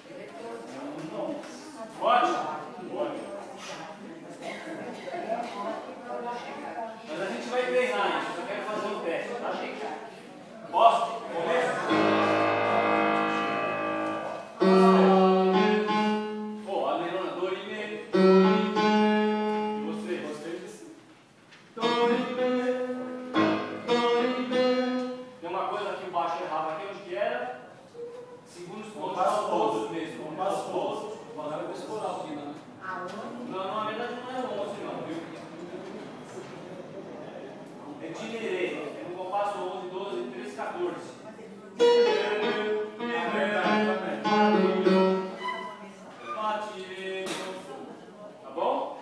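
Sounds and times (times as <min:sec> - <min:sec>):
murmur of voices: 0:00.0 - 0:21.1, 0:21.7 - 0:49.0
person speaking: 0:10.7 - 0:21.0, 0:21.8 - 0:27.0, 0:41.8 - 0:47.0
keyboard chords ringing: 0:11.5 - 0:16.7, 0:18.1 - 0:20.2, 0:21.8 - 0:25.4, 0:41.8 - 0:45.8.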